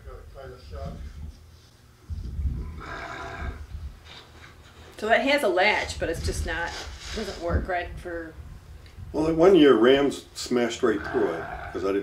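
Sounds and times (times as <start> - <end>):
sheep bleating: 10.9 - 11.9.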